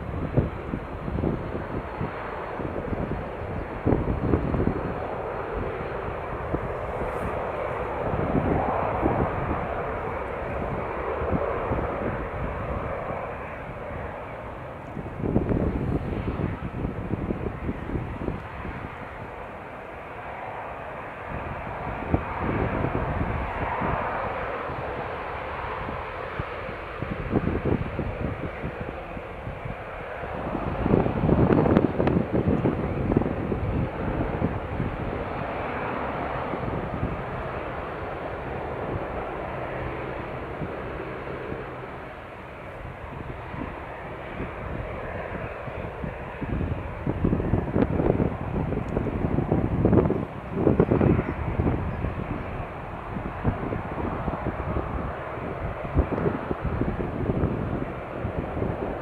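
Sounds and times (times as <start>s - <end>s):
jet airliner engine roar: 0.0s - 59.0s.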